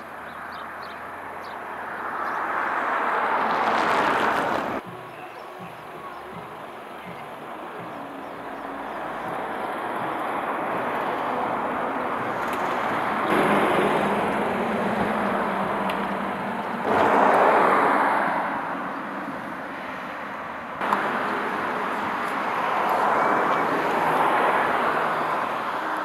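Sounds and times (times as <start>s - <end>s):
road vehicles passing: 0.0s - 26.0s.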